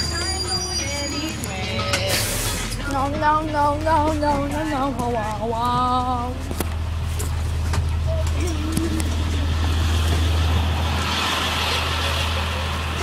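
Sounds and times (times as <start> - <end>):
bus engine rumbling: 0.0 - 13.0.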